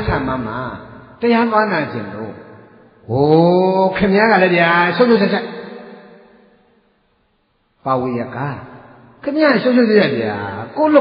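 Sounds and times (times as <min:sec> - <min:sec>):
man chanting: 0:00.0 - 0:02.4.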